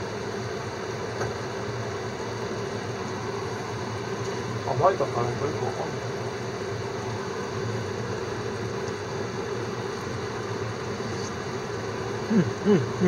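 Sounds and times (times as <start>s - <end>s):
gas stove hum and hiss: 0.0s - 13.0s.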